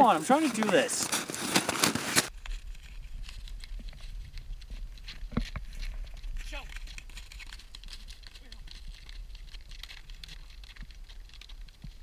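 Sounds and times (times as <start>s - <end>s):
snowshoes crunching on snow: 0.0s - 2.4s
wind rumble on microphone: 2.4s - 12.0s.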